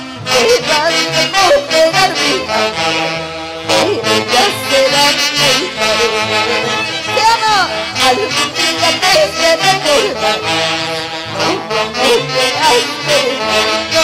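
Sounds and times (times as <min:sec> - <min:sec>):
live band with saxophones: 0:00.0 - 0:14.0.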